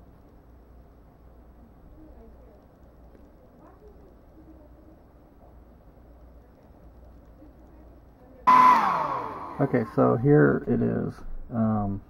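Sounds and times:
hair dryer whining: 8.5 - 10.1.

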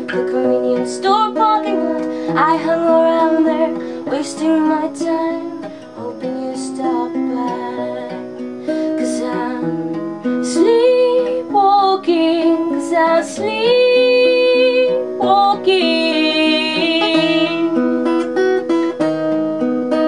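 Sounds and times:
woman singing: 0.0 - 17.8
acoustic guitar strumming chords: 0.0 - 20.0.

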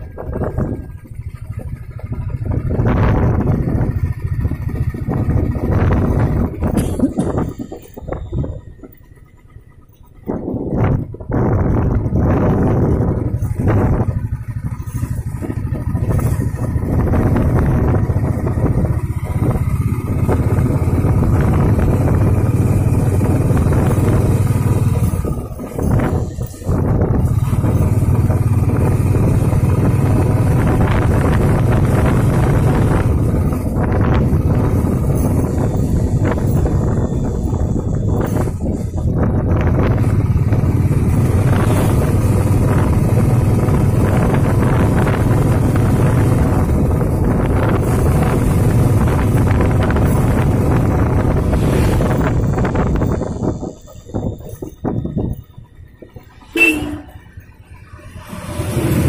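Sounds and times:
vehicle engine and road noise: 0.0 - 59.0.

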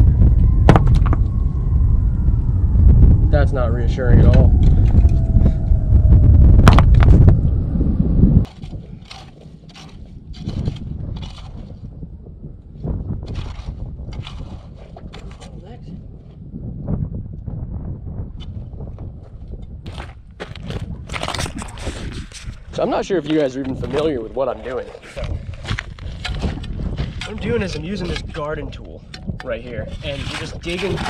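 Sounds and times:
loud low rumble: 0.0 - 8.9.

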